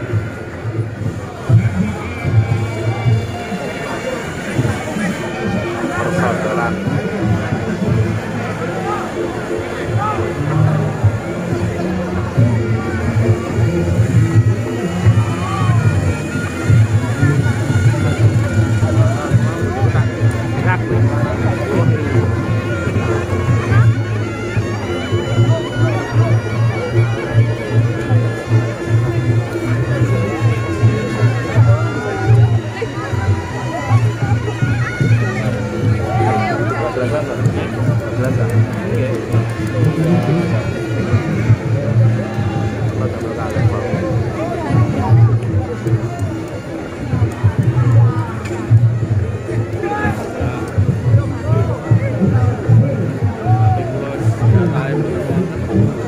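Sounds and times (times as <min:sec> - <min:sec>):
crowd noise: 0:00.0 - 0:56.0
reedy trumpet melody: 0:01.4 - 0:43.2.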